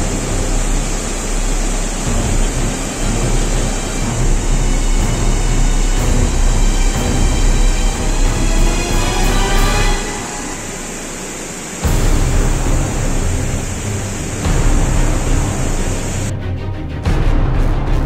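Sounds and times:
floodwater rushing: 0.0 - 16.3.

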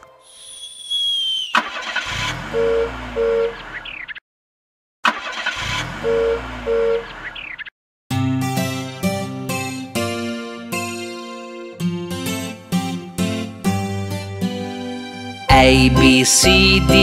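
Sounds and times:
high falling whistling tone: 0.0 - 1.8.

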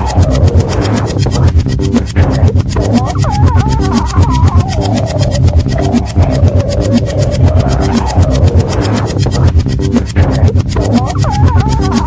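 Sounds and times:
fast electronic beat: 0.0 - 12.0
heavy bass pulses: 0.0 - 12.0.

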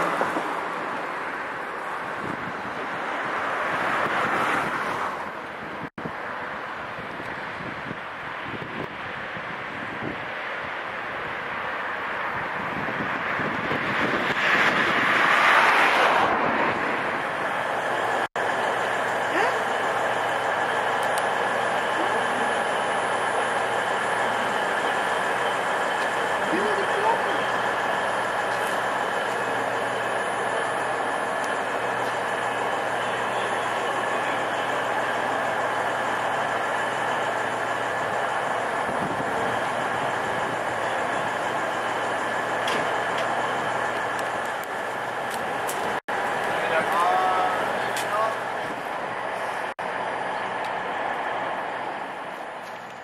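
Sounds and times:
train equipment humming: 0.0 - 53.0
faint voices: 21.5 - 28.0, 32.2 - 35.7.

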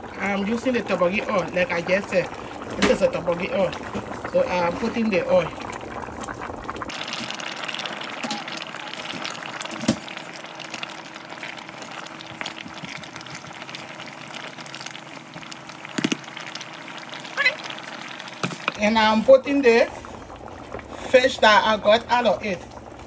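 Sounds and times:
soup bubbling in a pot: 0.0 - 23.0.

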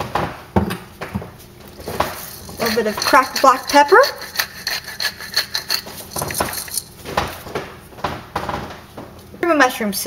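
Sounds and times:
kitchen items knocking: 0.0 - 8.8
pepper grinder clicking: 1.8 - 6.9.

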